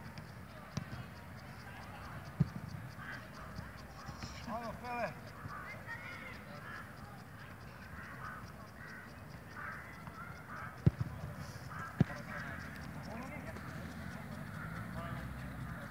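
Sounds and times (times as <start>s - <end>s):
group of players talking: 0.0s - 15.9s
football being kicked: 10.8s - 11.2s, 12.0s - 12.2s.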